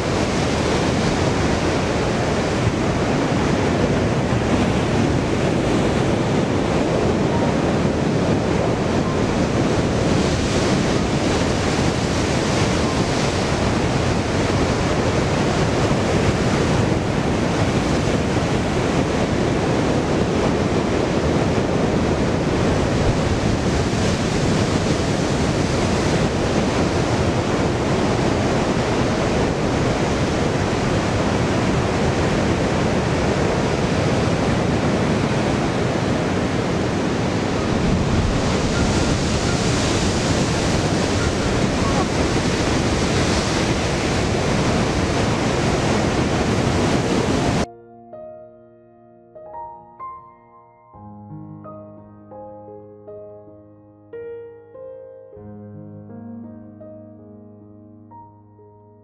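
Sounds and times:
surf breaking on rocky shore: 0.0 - 47.7.

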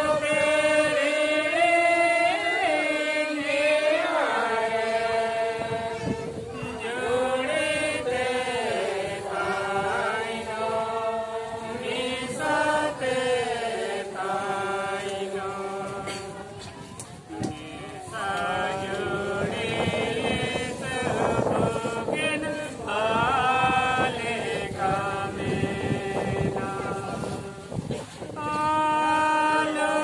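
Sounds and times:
group singing a hymn: 0.0 - 30.0.

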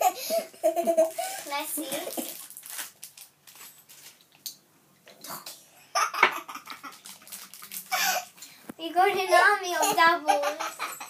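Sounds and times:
girl laughing: 0.0 - 1.4, 6.0 - 7.1, 9.8 - 11.0.

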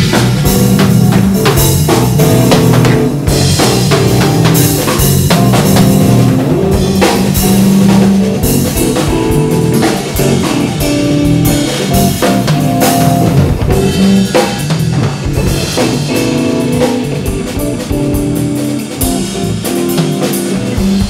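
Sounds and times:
loud band music with drums and guitar: 0.0 - 21.0.

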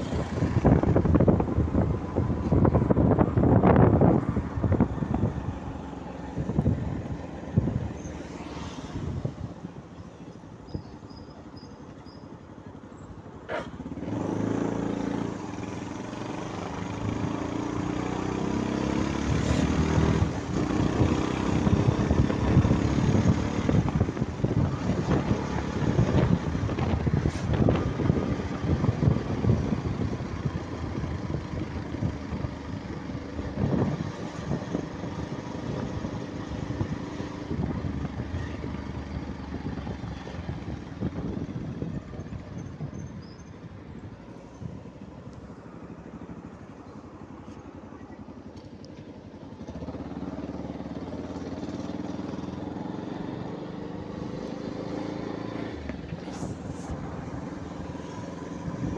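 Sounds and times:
wind buffeting microphone: 0.0 - 8.2, 19.2 - 45.3, 51.6 - 58.9
motorcycle engine running: 13.6 - 58.9.

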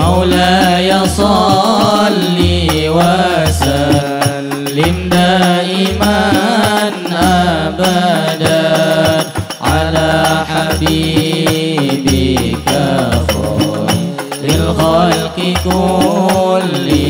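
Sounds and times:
frame drums beating: 0.0 - 17.0
men singing together: 0.0 - 17.0.

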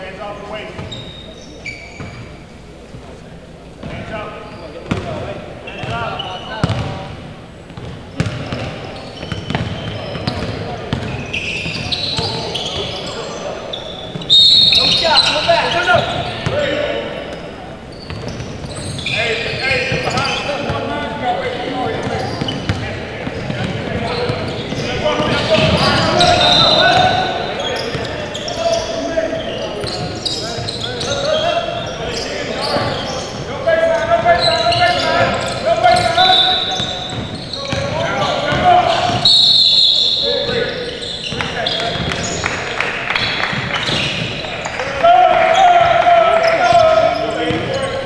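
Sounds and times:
voices echoing in gym hall: 0.0 - 48.0.

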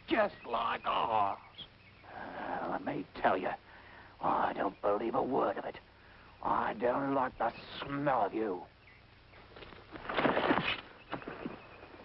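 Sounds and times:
light rustling in undergrowth: 8.8 - 12.0
crash of rustling brush: 9.5 - 11.6.

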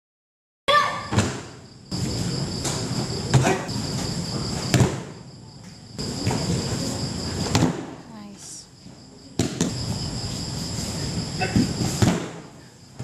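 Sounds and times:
crickets chirring: 0.7 - 13.0
bodies slapping foam mat: 1.1 - 5.2, 11.4 - 13.0.

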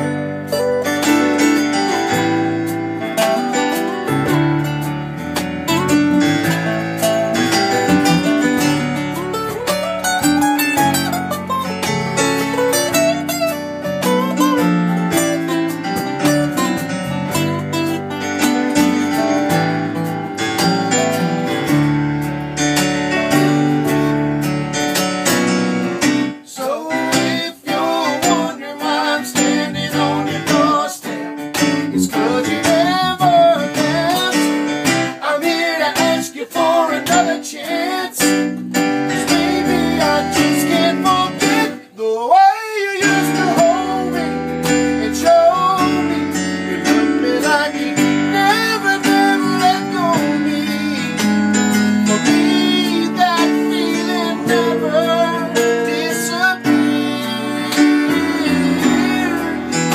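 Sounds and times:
keyboard piano chords: 0.0 - 42.0, 42.9 - 59.9
acoustic guitar strumming: 0.0 - 59.9
man singing: 26.4 - 38.4, 39.0 - 59.9.

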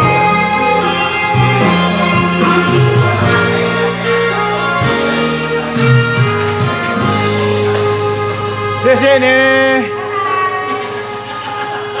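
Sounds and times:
karaoke backing music chord: 0.0 - 12.0.

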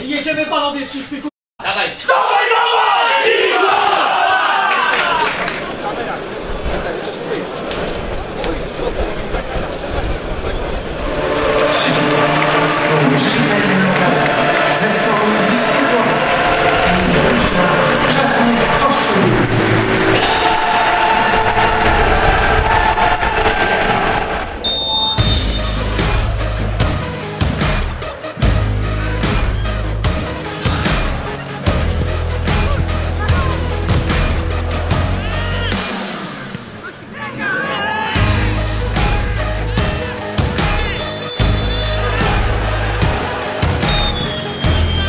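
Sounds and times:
voices: 0.0 - 21.8
background music with deep bass: 11.0 - 22.0, 24.6 - 36.5, 38.2 - 45.0.

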